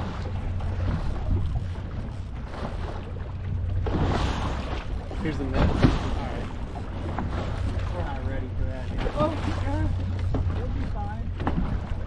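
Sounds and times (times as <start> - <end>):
outboard motor running: 0.0 - 12.0
water noise: 0.0 - 12.0
wind: 0.0 - 12.0.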